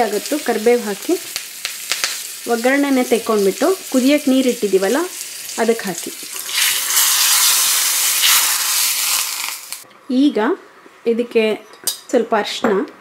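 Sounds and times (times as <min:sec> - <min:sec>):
hot oil sizzling in water: 0:00.0 - 0:09.8.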